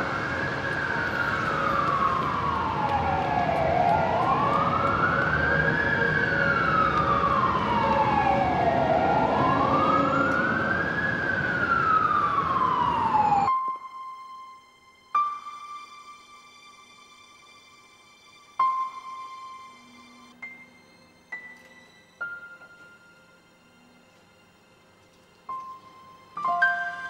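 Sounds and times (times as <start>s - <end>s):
city traffic rumble: 0.0s - 13.5s
emergency siren wailing: 0.0s - 14.3s.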